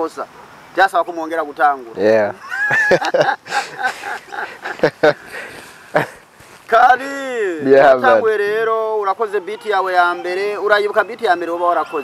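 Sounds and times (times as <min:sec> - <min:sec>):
man laughing: 0:02.4 - 0:06.2
sharp catches of breath: 0:05.2 - 0:06.5.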